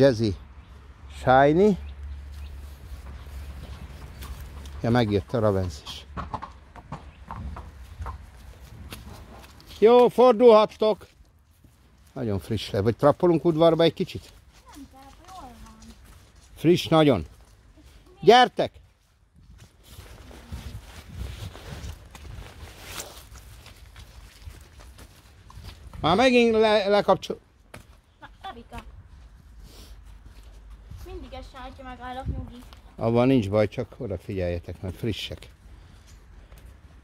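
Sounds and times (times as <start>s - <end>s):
horse hooves on dirt: 1.8s - 37.0s.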